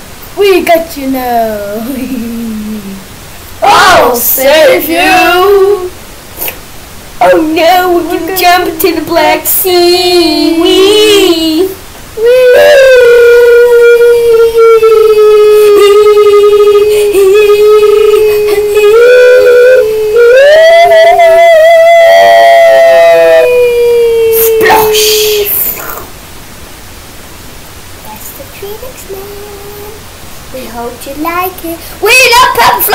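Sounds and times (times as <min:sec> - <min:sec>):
child singing long notes: 0:07.2 - 0:25.2.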